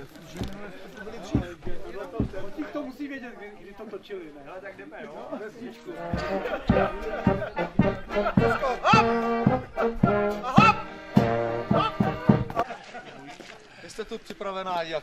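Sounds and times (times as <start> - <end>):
bass drum beat: 1.2 - 2.6, 6.1 - 12.6
brass band playing: 5.9 - 12.6.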